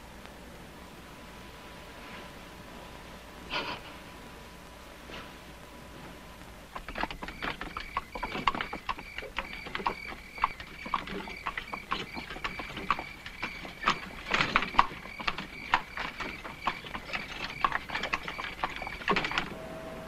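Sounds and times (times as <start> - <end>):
horse hooves on gravel: 6.8 - 19.5
steady high-pitched tone: 19.4 - 20.0.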